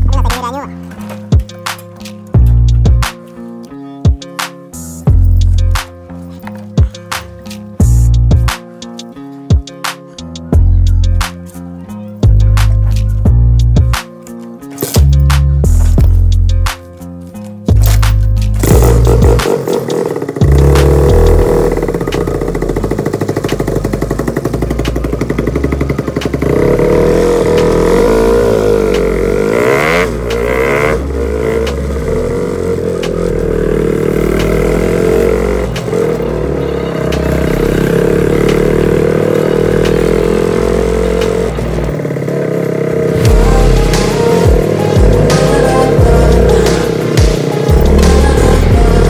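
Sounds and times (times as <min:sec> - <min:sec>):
motorcycle engine running: 0:17.7 - 0:49.0.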